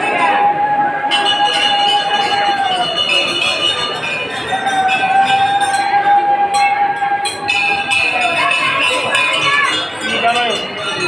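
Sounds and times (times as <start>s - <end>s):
murmur of crowd: 0.0s - 11.0s.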